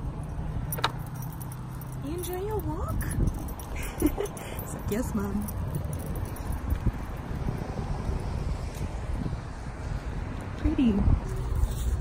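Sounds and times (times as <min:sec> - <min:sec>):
dog lead clip jingling: 0:00.2 - 0:07.6.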